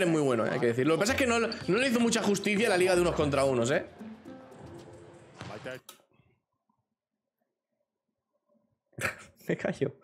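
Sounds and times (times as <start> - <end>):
background music: 0.0 - 6.0.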